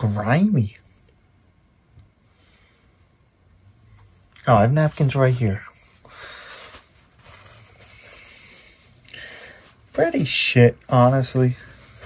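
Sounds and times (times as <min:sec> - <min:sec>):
paper napkin rustling: 0:04.5 - 0:10.5.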